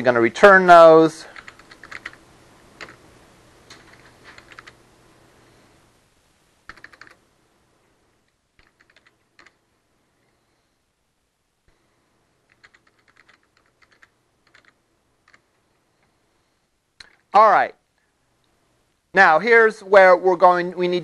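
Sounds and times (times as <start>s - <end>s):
computer keyboard typing: 1.3s - 2.2s, 2.8s - 3.0s, 3.7s - 4.8s, 6.7s - 7.2s, 8.6s - 9.6s, 12.5s - 15.5s.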